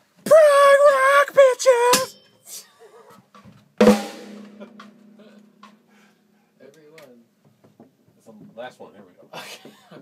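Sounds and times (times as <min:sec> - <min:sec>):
drum hit ringing: 0:03.8 - 0:05.9.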